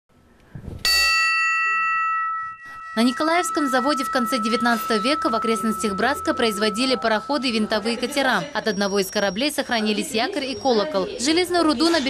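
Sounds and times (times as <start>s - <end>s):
ship's bell ringing: 0.9s - 9.2s.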